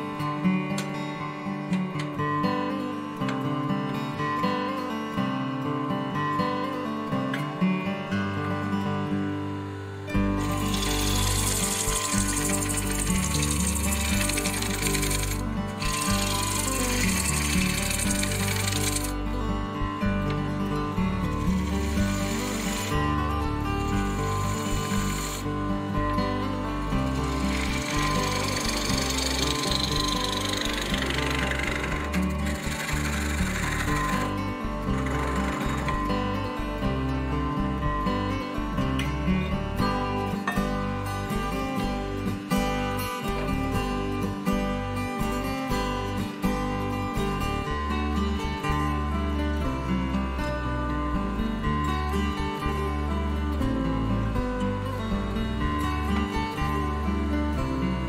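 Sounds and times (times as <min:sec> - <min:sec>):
acoustic guitar music: 0:00.0 - 0:58.0
wood lathe cutting bowl: 0:10.2 - 0:19.3, 0:21.1 - 0:25.6, 0:26.8 - 0:36.4.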